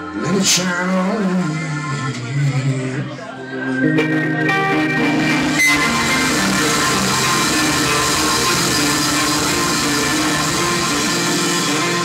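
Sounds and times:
electric guitar: 0:00.0 - 0:12.0
hammond organ: 0:03.2 - 0:12.0
bass guitar: 0:03.8 - 0:12.0
drum kit: 0:04.7 - 0:12.0.

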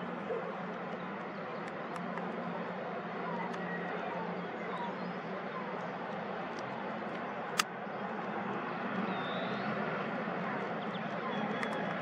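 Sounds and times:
distant jet airliner roar: 0:00.0 - 0:12.0.

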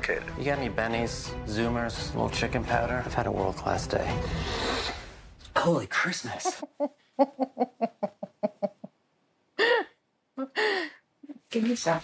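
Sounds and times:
person laughing: 0:06.4 - 0:08.9.

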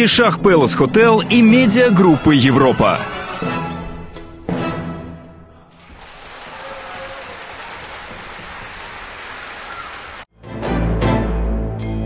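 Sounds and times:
audience applauding: 0:05.7 - 0:10.3.

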